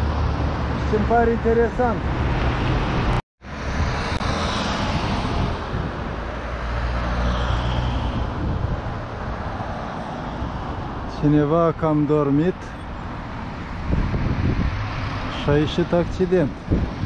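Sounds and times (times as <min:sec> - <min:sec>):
city street traffic rumble: 0:00.0 - 0:17.0.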